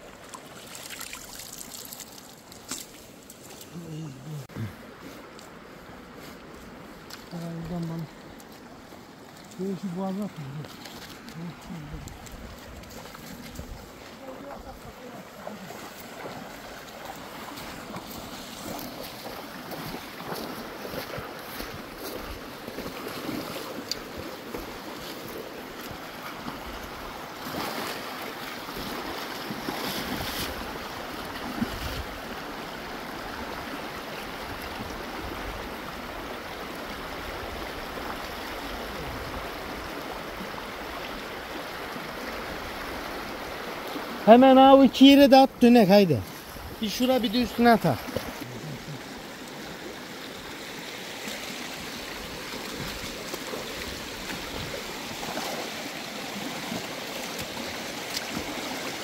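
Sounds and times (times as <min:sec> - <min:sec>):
splashes from wading: 0:00.0 - 0:04.0, 0:07.0 - 0:44.2, 0:46.2 - 0:59.0
stream rushing over stones: 0:00.0 - 0:59.0.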